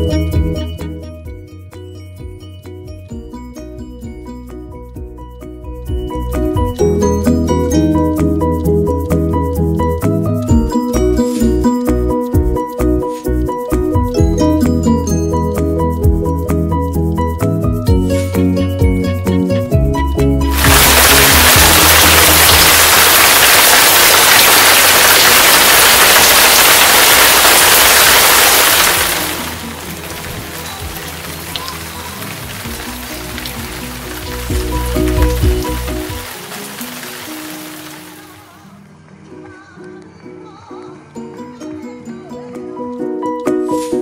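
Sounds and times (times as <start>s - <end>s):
background music: 0.0s - 44.0s
music: 0.0s - 44.0s
heavy rain: 20.5s - 38.5s.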